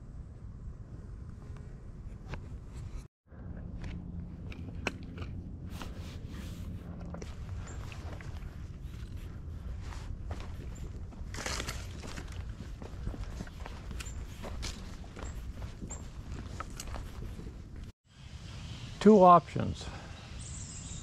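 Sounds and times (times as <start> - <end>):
footsteps on dirt trail: 3.6 - 17.9.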